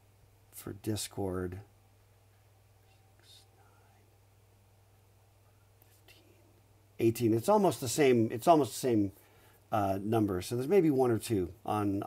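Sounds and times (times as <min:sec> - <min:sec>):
faint low hum: 0:00.0 - 0:12.0
soft breathy hiss: 0:00.0 - 0:12.0.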